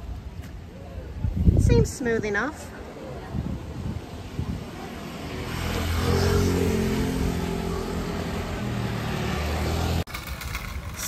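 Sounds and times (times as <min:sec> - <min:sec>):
vehicle engine passing by: 0:04.8 - 0:10.1.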